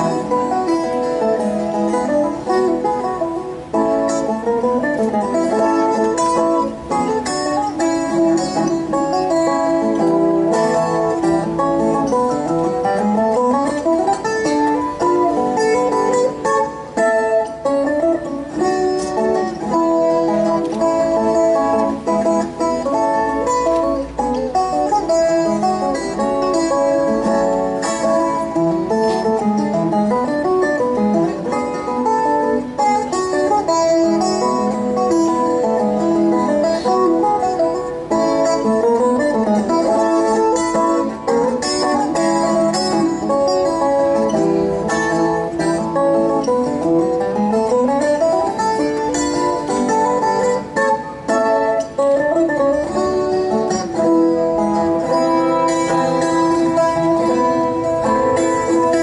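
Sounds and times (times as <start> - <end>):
steel-string guitar picking: 0.0 - 59.0.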